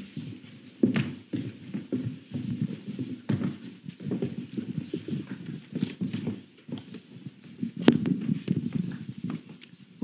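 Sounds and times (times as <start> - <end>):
high heels on wooden stage: 0.0 - 10.0
microphones handled: 0.0 - 10.0
swivel chairs handled: 0.0 - 10.0.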